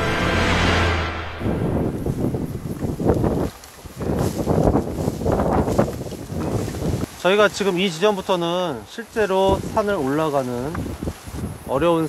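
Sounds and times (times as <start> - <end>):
wind buffeting microphone: 1.4 - 8.3, 9.0 - 12.0
rustling through tall grass: 2.1 - 12.0.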